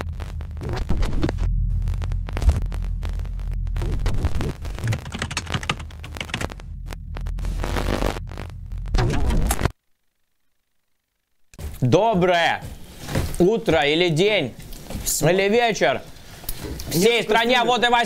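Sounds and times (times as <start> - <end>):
rapid digital clicks and crackles: 0.0 - 9.8
bursts of static: 0.0 - 15.9
low electrical hum: 0.0 - 18.0.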